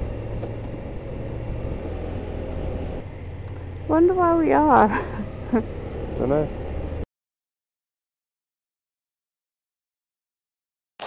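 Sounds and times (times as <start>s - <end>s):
motorcycle engine cruising: 0.0s - 7.0s.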